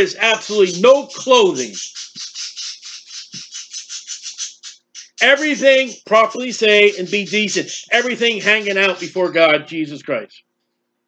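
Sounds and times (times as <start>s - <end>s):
rapid chirping: 0.0s - 10.4s
faint low hum: 4.6s - 10.4s.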